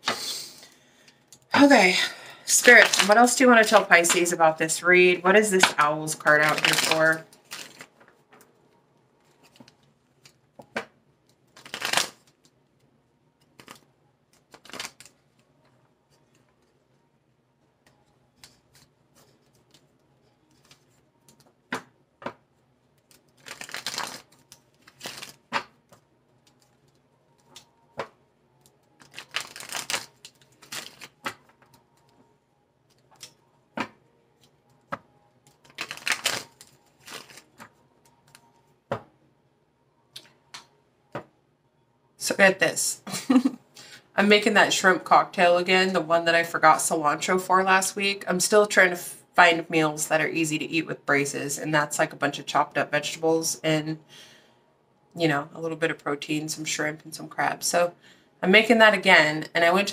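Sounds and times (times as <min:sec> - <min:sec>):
cards being shuffled: 0:02.5 - 0:04.4, 0:05.6 - 0:08.5, 0:09.2 - 0:12.6, 0:13.5 - 0:15.2, 0:18.4 - 0:22.4, 0:23.0 - 0:32.1, 0:32.9 - 0:39.1.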